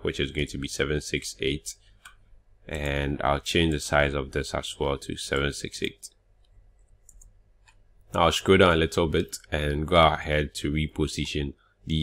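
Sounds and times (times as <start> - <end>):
keyboard and mouse clicks: 6.4 - 7.8.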